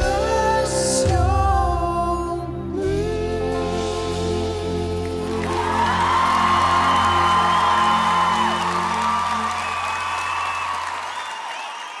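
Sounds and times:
applause: 5.2 - 12.0
audience cheering and whooping: 5.2 - 12.0.

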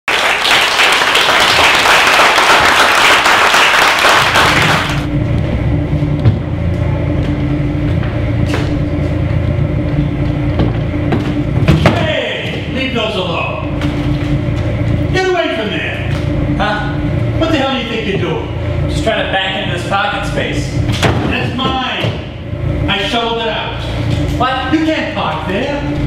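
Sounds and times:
audience applauding: 0.0 - 5.1
car engine idling: 1.1 - 26.0.

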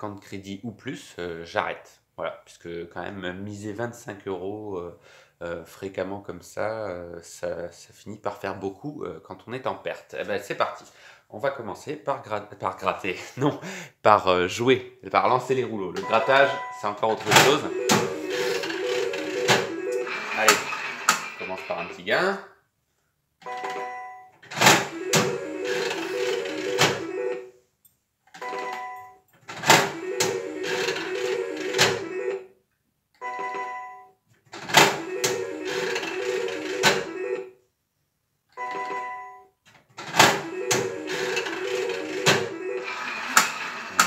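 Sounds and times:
slot reels stopping clacks: 17.3 - 21.7, 24.6 - 27.4, 29.7 - 32.4, 34.8 - 37.4, 40.2 - 44.0
short electronic beep: 17.4 - 20.7
pulsing electronic jingle: 17.4 - 21.1, 24.8 - 27.5, 29.9 - 32.4, 35.0 - 37.5, 40.4 - 43.3.

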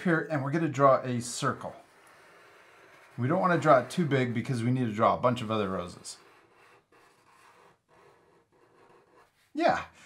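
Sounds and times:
marker scratching on paper: 1.1 - 9.5.

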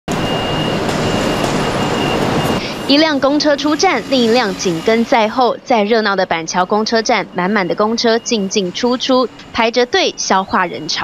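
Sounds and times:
bus engine running: 0.1 - 11.0
traffic noise: 0.1 - 11.0
thin high-pitched tone: 1.9 - 11.0.

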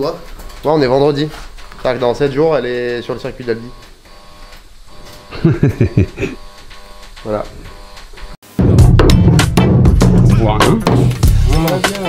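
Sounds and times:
man laughing: 5.3 - 6.4.

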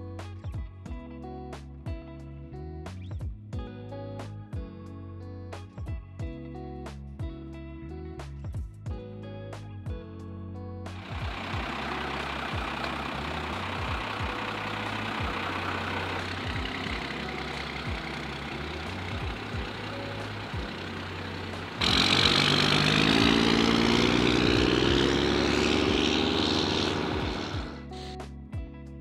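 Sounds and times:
truck engine accelerating: 11.0 - 28.1.

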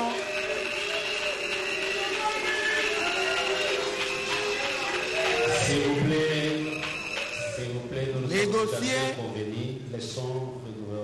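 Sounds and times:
group of people singing: 5.0 - 7.9.

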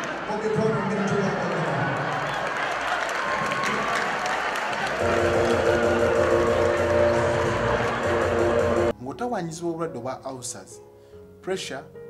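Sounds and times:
crowd applauding and cheering: 0.0 - 8.9
loud music with steady bass: 5.0 - 8.9.

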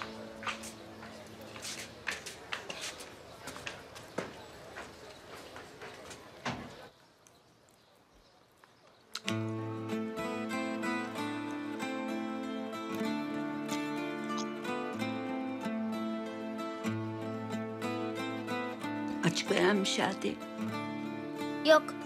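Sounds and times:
footsteps: 0.0 - 6.9
soft background music: 9.4 - 22.0.

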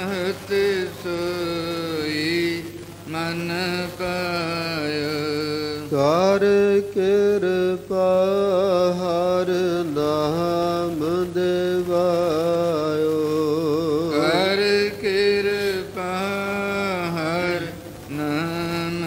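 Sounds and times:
men singing long held notes: 0.0 - 19.0
steady low hum: 0.0 - 19.0.

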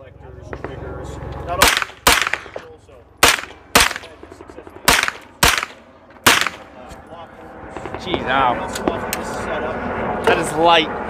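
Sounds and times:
rifle shots with echo: 0.5 - 0.9, 1.6 - 6.9.

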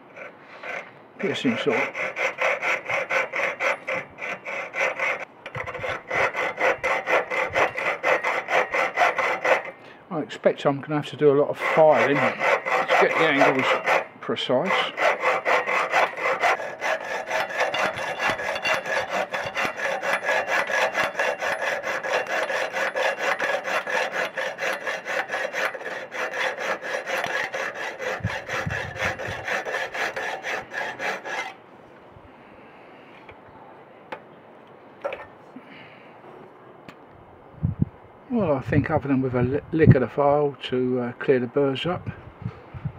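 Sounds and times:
saw cutting metal tube: 0.0 - 9.8, 11.0 - 31.6.

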